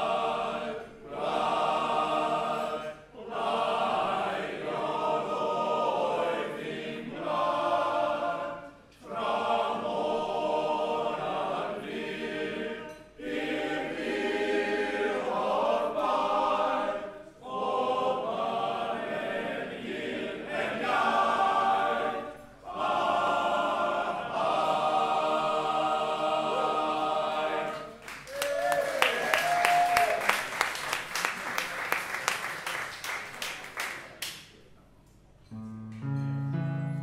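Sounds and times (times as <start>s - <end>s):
men's choir singing unaccompanied: 0.0s - 28.1s.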